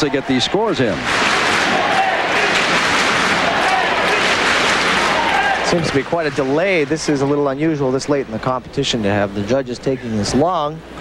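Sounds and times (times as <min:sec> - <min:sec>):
crowd applauding: 0:00.0 - 0:07.0.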